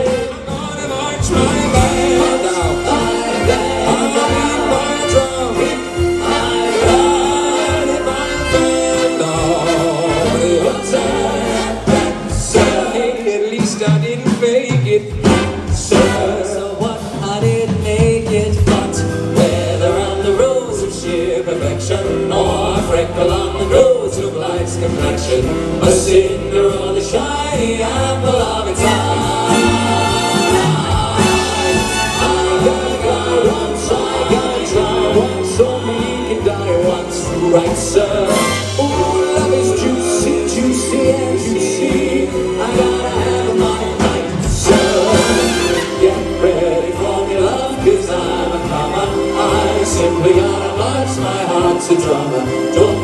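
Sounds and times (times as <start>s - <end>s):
live band playing: 0.0s - 53.0s
male vocal group singing in harmony: 0.0s - 53.0s.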